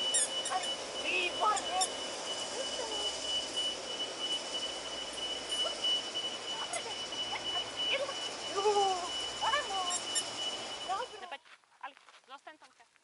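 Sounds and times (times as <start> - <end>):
thin high-pitched tone: 0.0 - 11.4
constant hiss: 0.0 - 13.0.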